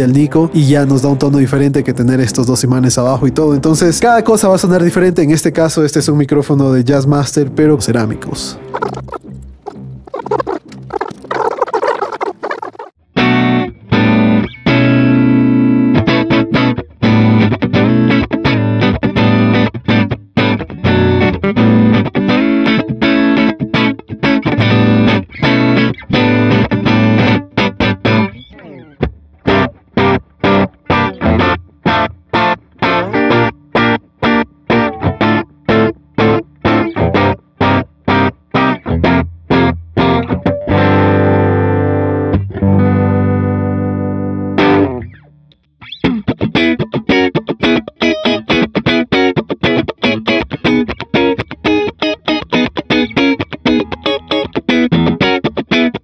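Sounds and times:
strummed electric guitar chords: 13.1s - 56.0s.

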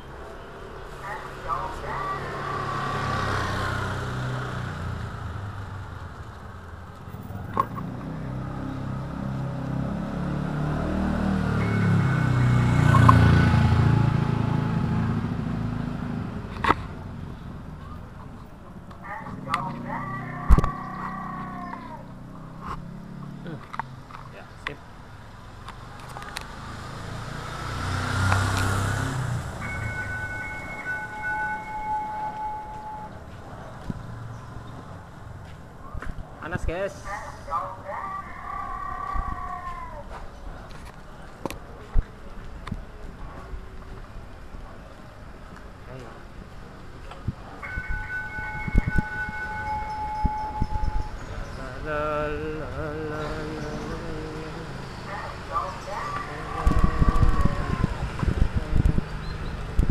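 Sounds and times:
vehicle engines passing: 0.0s - 59.9s.

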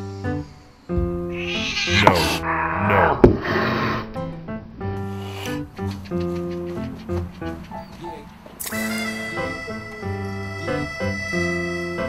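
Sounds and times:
background music: 0.0s - 12.0s
kitten meowing: 1.3s - 3.2s.

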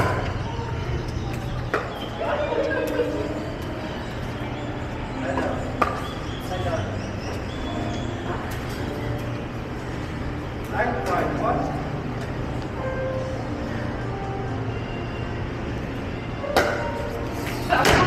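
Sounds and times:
background music: 0.0s - 18.0s.

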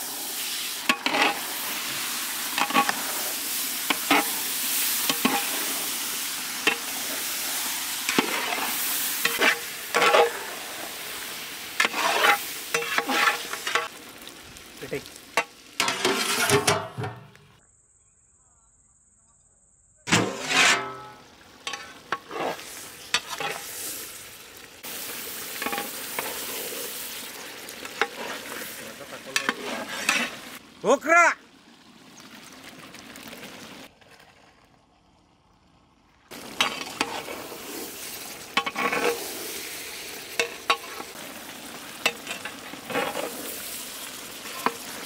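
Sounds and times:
chicken sizzling: 0.0s - 17.6s, 20.1s - 45.0s
metal spatula scraping a pot: 0.8s - 1.6s, 2.5s - 3.2s, 3.9s - 4.4s, 5.0s - 5.8s, 6.6s - 7.0s, 8.1s - 10.6s, 11.8s - 13.9s, 15.8s - 17.3s, 20.1s - 23.8s, 25.6s - 26.9s, 27.8s - 30.6s, 36.6s - 39.6s, 40.3s - 41.2s, 42.0s - 43.6s, 44.4s - 45.0s.

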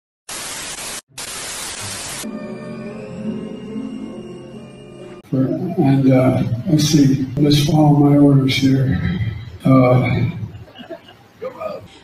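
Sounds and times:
tv static hiss: 0.3s - 2.6s, 5.3s - 12.0s.

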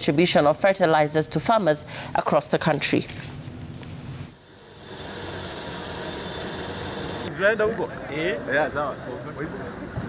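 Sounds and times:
low machine hum: 3.4s - 8.0s
machine hiss: 4.4s - 7.3s.

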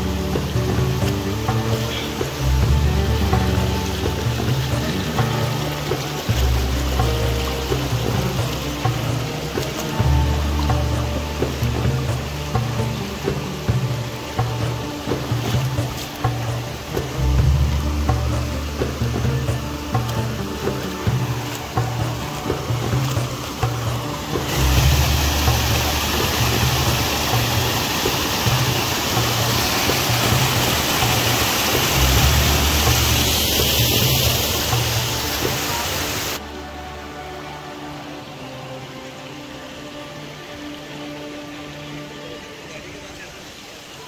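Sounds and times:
music with steady beat: 0.0s - 37.3s
waterfall roar: 0.0s - 44.0s.

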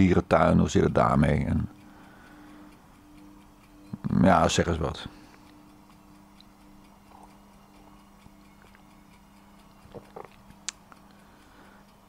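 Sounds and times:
low electrical hum: 0.0s - 12.0s
faint ticks: 4.6s - 12.0s.

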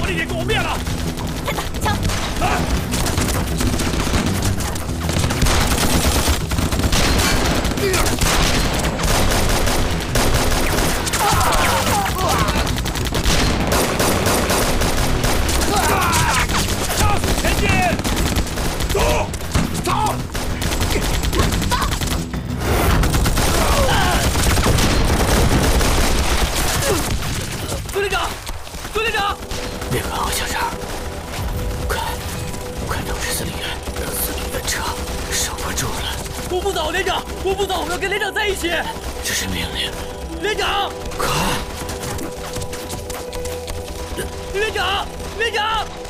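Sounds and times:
rapid continuous gunfire: 0.0s - 46.0s.

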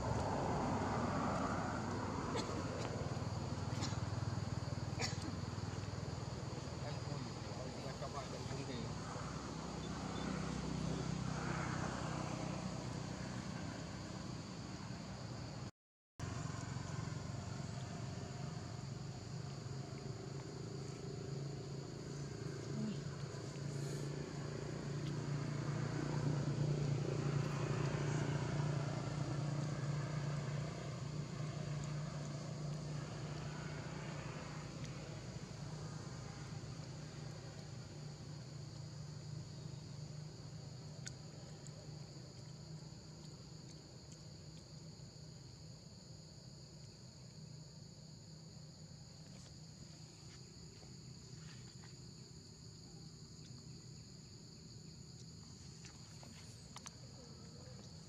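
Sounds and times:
insects buzzing: 0.0s - 58.0s
motorbike engine passing: 16.2s - 38.4s.

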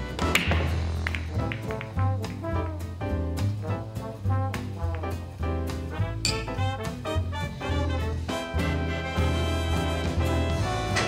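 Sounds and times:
swing jazz music with brass: 0.0s - 11.0s
cue tip striking billiard ball: 0.2s - 2.5s
light billiard ball clicks: 0.4s - 2.4s.

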